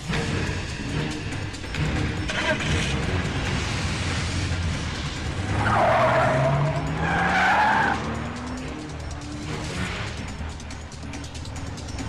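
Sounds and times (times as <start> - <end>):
background music: 0.0 - 12.0
car engine revving: 0.0 - 12.0
tyres squealing: 5.4 - 8.2.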